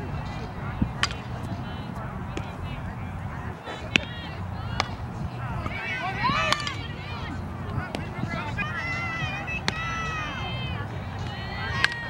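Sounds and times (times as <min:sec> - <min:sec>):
distant high-pitched voices chattering: 0:00.0 - 0:12.0.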